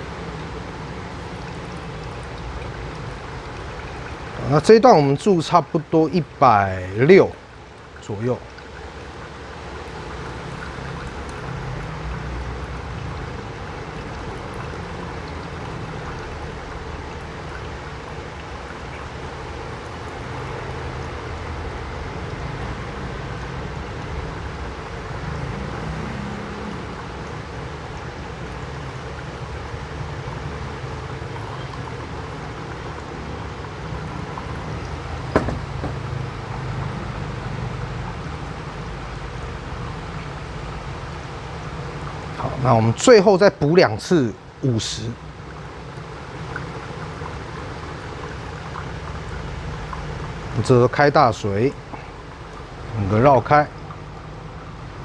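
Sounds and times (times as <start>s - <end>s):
water pouring onto coffee grounds: 0.0s - 55.0s
sharp knock: 35.4s - 36.0s.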